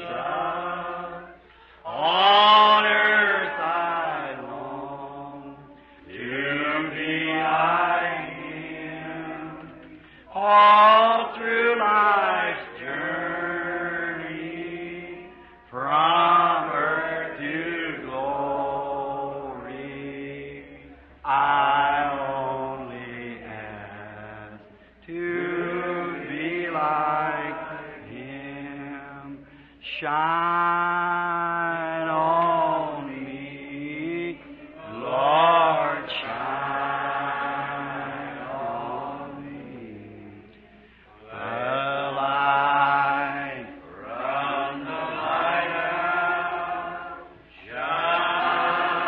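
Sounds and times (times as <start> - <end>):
congregation singing a hymn: 0.0 - 49.0.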